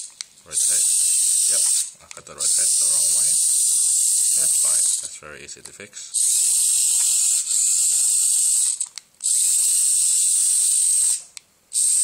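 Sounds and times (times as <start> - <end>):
servos whirring: 0.0 - 5.1, 6.1 - 12.0.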